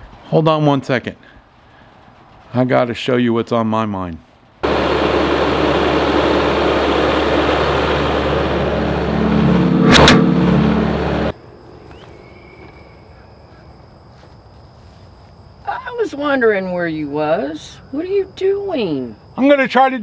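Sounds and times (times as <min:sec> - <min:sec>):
tractor diesel engine running: 0:04.6 - 0:11.3
sharp clunk: 0:09.8 - 0:10.7.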